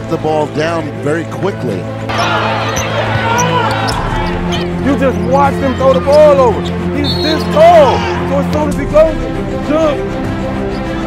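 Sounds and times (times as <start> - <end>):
sneakers squeaking on court: 2.1 - 6.4.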